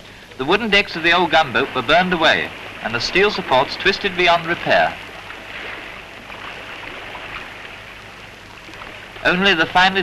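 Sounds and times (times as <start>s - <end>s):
faint low hum: 0.0s - 10.0s
steady hiss: 0.0s - 10.0s.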